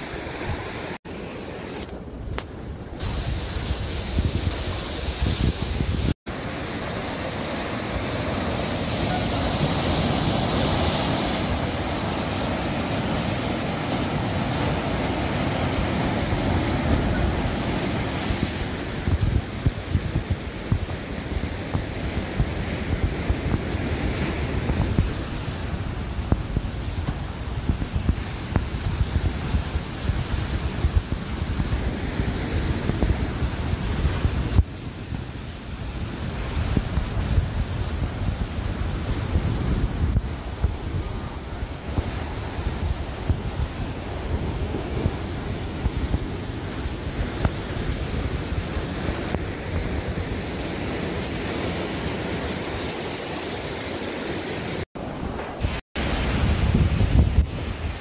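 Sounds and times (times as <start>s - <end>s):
surf breaking over rocks: 0.0s - 58.0s
wind buffeting microphone: 1.8s - 53.1s, 55.0s - 58.0s.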